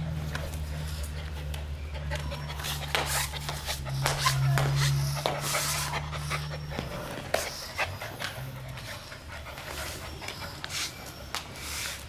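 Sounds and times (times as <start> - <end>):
puppies panting: 0.1 - 12.0.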